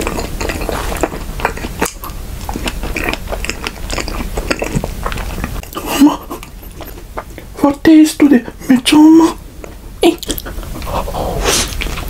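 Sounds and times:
chewing with mouth clicks: 0.0 - 7.6, 9.6 - 12.0.

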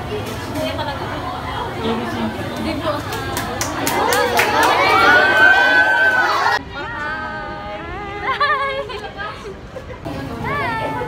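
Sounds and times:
sharp hand claps: 3.1 - 4.8
young women chattering excitedly: 6.2 - 11.0.

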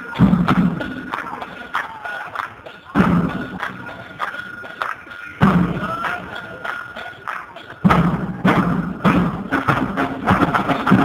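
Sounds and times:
street drums beating: 0.0 - 11.0.

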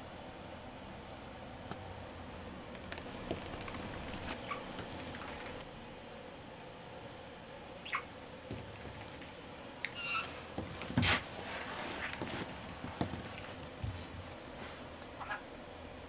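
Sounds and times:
bird's feet ticking: 2.6 - 5.6
budgerigar chirps: 7.8 - 8.1, 9.9 - 10.3
ball knocking on wooden floor: 10.5 - 11.2, 12.1 - 14.0.

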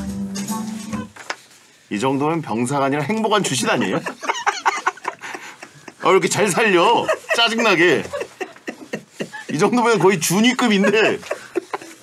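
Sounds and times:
man laughing in cackles: 6.9 - 9.6, 10.5 - 12.0.

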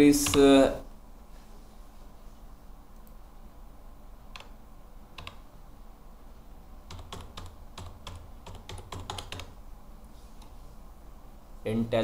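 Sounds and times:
computer keyboard typing: 0.2 - 0.6, 4.3 - 5.5, 6.8 - 9.6.

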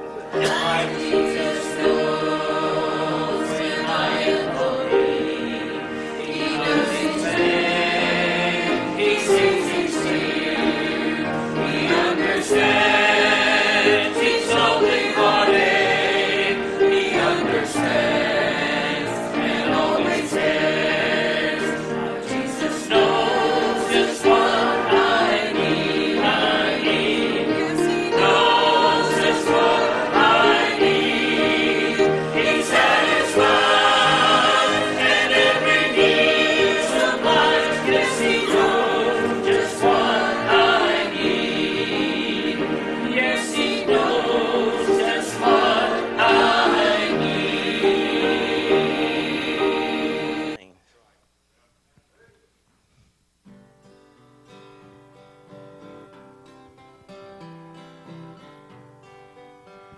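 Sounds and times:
choir singing a hymn: 0.0 - 50.7.

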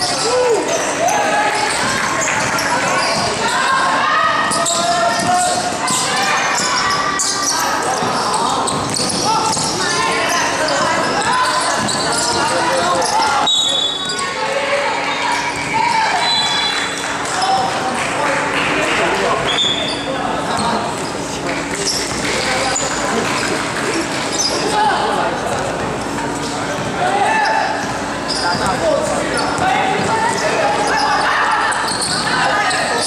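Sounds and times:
players and spectators shouting: 0.0 - 18.0, 26.9 - 33.0
basketball bouncing on court: 1.6 - 3.5, 4.4 - 13.2
referee's whistle: 13.4 - 14.2, 16.2 - 16.9.

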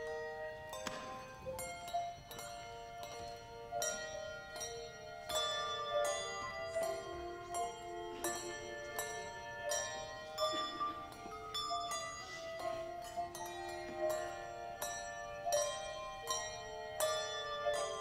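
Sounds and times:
handbell choir playing: 0.0 - 18.0.

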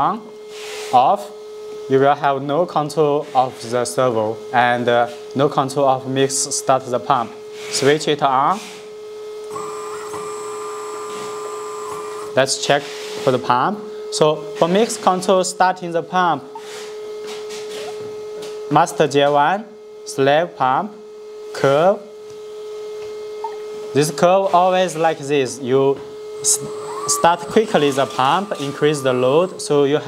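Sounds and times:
steady hum: 0.0 - 12.7, 22.6 - 30.0
small hydraulic pump motor whine: 7.3 - 13.4, 16.4 - 18.6, 22.4 - 30.0.

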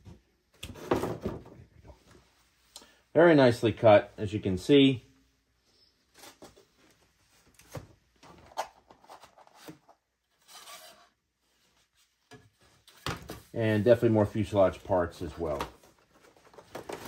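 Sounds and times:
plywood sheets rubbing: 10.4 - 11.2
wood scraping: 10.4 - 11.2.

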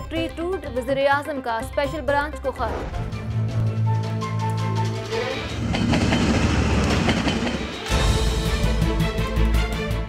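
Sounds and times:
train wheels rumbling on rails: 5.1 - 8.1
sharp rail clacks: 5.6 - 7.9.

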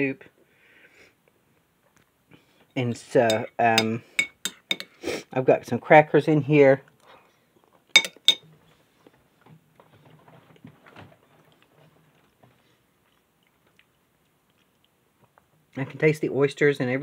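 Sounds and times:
spoon clinking ceramic bowl: 3.2 - 4.9, 8.0 - 8.4
faint chewing: 9.8 - 15.8.

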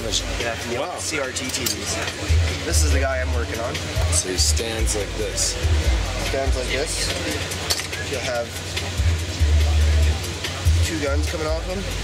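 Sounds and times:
faint voices: 0.0 - 12.0
music with deep bass line: 0.0 - 12.0.

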